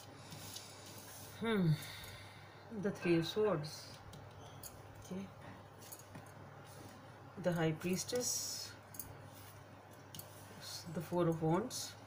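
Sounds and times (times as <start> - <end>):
person speaking: 2.7 - 4.1.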